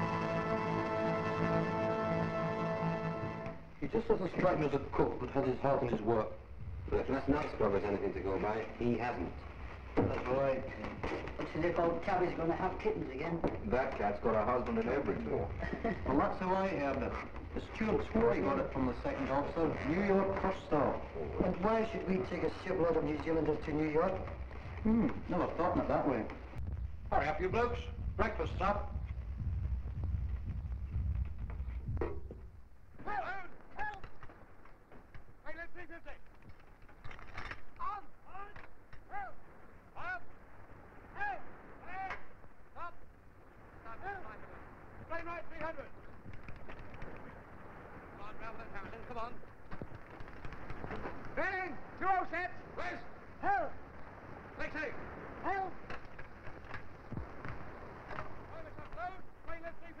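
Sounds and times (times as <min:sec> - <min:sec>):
film soundtrack hiss: 0:00.0 - 1:00.0
men calling and talking: 0:00.0 - 1:00.0.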